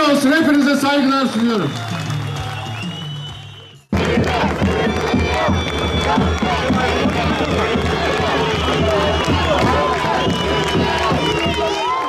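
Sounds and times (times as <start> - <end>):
crowd cheering and shouting: 0.0 - 12.0
music playing: 1.4 - 12.0.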